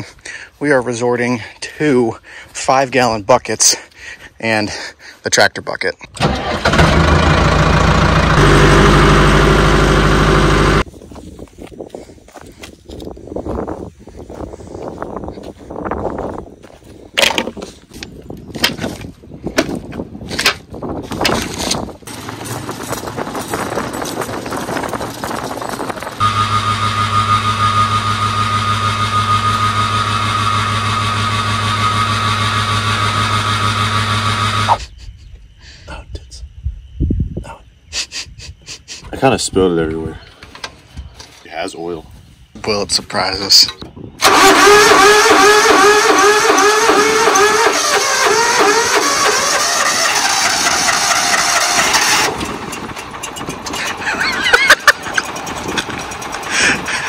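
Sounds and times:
diesel tractor engine running: 6.2s - 10.9s, 22.0s - 34.8s, 44.2s - 57.0s
steady drone: 26.2s - 34.7s
knocks and clatter: 54.7s - 56.5s.

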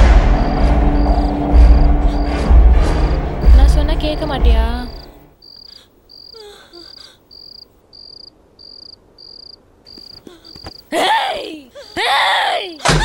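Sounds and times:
cricket chirping: 0.0s - 11.0s.

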